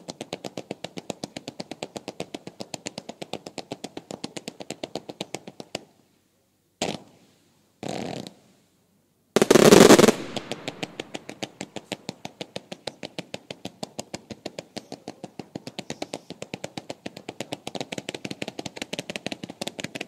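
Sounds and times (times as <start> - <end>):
rapid firework reports: 9.4 - 12.0
fireworks blasts: 9.4 - 20.0.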